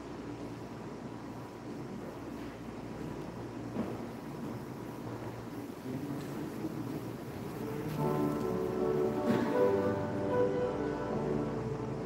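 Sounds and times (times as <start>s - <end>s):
people walking about: 0.0s - 12.0s
steady low hum: 0.0s - 12.0s.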